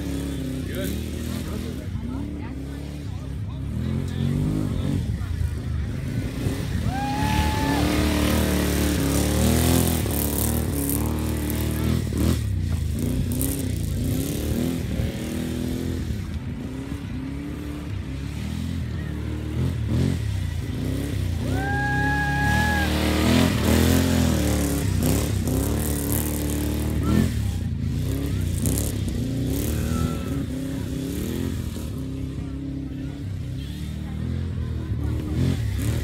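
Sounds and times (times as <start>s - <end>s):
golf cart engines revving: 0.0s - 36.0s.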